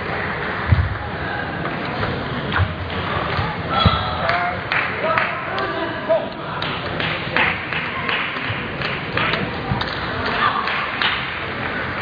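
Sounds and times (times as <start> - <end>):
sports hall background noise: 0.0 - 12.0.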